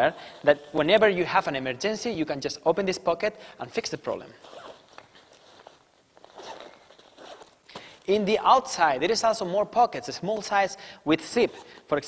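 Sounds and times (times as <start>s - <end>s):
faint zipper being pulled: 4.4s - 7.7s
backpack rustling: 4.4s - 8.1s.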